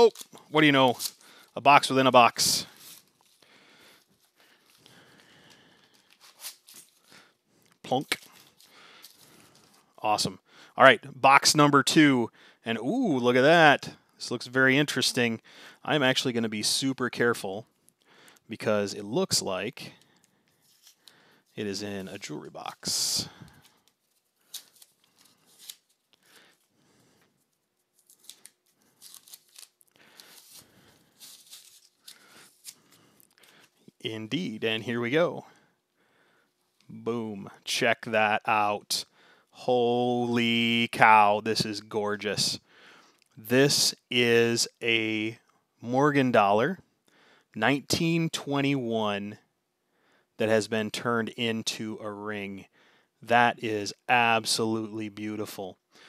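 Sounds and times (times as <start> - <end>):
tape peeling and ripping: 0.0 - 1.5, 2.7 - 3.4, 5.9 - 7.1, 23.5 - 26.6, 27.8 - 33.7
cardboard packaging rustling: 2.6 - 3.4, 5.8 - 7.1, 23.4 - 26.8, 27.4 - 33.8.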